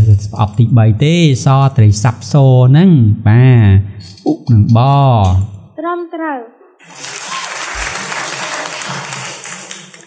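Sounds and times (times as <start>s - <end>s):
many hands clapping: 6.8s - 10.0s.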